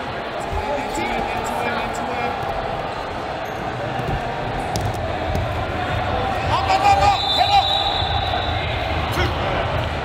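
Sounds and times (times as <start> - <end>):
voices of spectators and coaches: 0.0 - 10.0.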